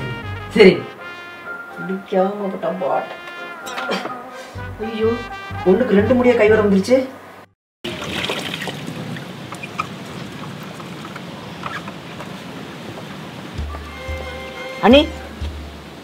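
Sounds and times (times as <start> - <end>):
music with a low pulse: 4.6 - 6.8, 13.6 - 15.8
water trickling and splashing: 7.8 - 16.0.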